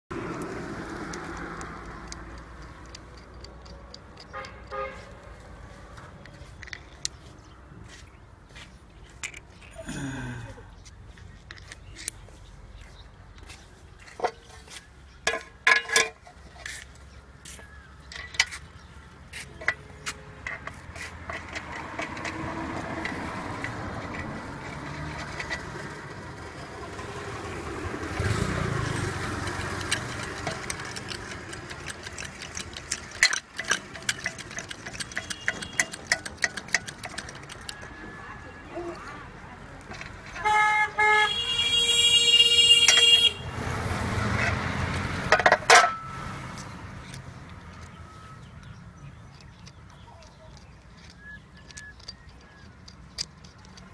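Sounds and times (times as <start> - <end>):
metal clicks and knocks: 0.1 - 7.3, 9.2 - 9.7, 11.3 - 12.3, 13.4 - 17.0, 17.9 - 27.5, 28.2 - 38.1, 39.8 - 40.7, 41.3 - 43.3, 44.3 - 53.9
hydraulic punch clicking: 28.2 - 37.9.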